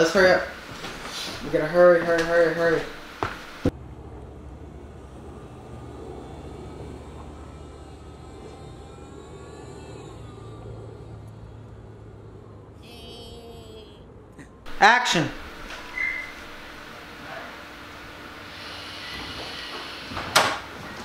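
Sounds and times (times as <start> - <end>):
distant traffic rumble: 0.0 - 18.6.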